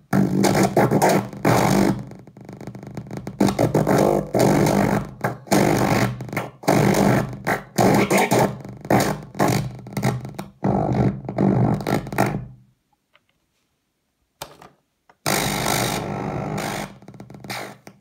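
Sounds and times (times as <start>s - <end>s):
talking toy glitched electronic noise: 7.9s - 8.5s.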